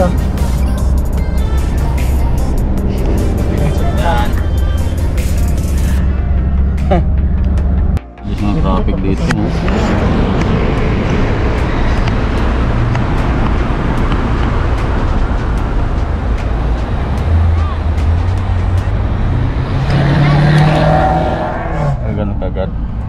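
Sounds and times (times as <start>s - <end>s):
car road and engine noise: 0.0s - 23.0s.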